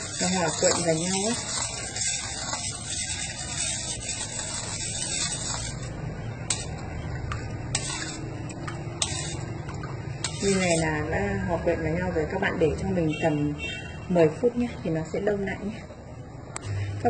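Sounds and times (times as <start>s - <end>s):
ladle swishing in metal bowl: 0.0s - 11.2s.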